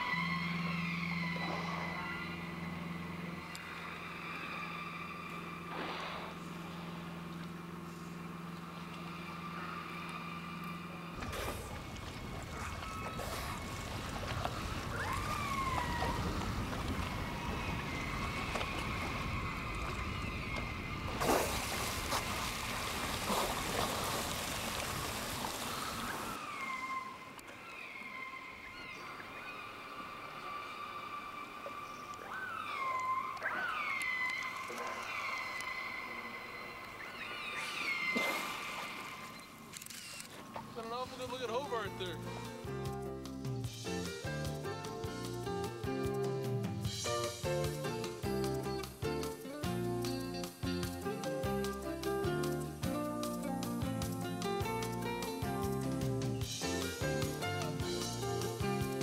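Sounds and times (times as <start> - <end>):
killer whale calls: 0.0 - 6.6, 8.2 - 40.8
low motor hum: 0.0 - 26.5
boat and water rushing: 0.0 - 27.6.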